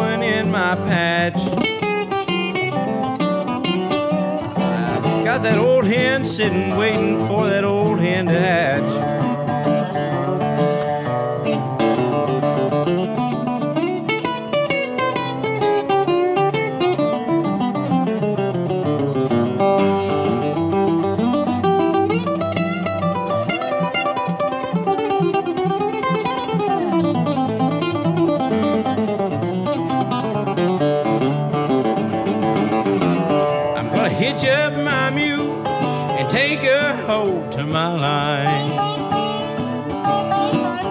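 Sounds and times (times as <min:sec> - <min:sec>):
picked acoustic guitar: 0:00.0 - 0:40.9
slide guitar with steel bar: 0:00.0 - 0:40.9.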